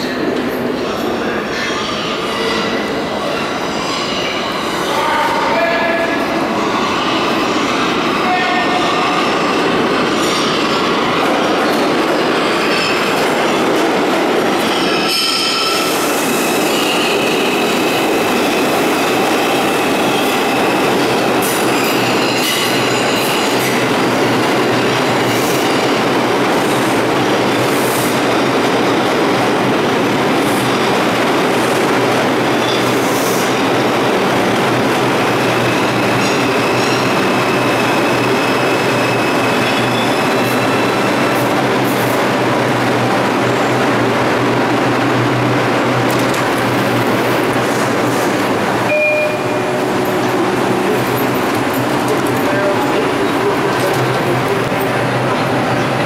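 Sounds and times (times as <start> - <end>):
subway train wheels rumbling: 0.0 - 56.0.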